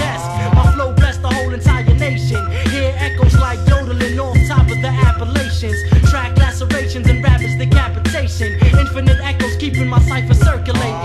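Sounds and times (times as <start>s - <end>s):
drum beat: 0.0s - 2.2s, 3.2s - 11.0s
deep bassline: 0.0s - 11.0s
vocal line: 0.0s - 11.0s.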